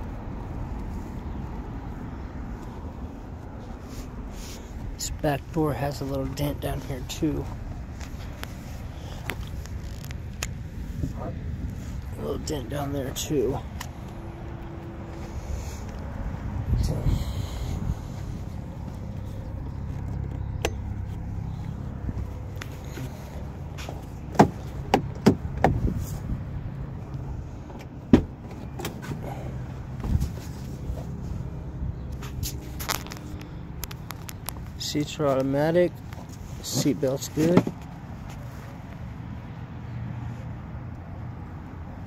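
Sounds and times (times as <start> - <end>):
low steady rumble: 0.0 - 34.9
latch and handle clicks: 20.1 - 20.9
car door opening: 23.8 - 26.0, 27.7 - 29.3.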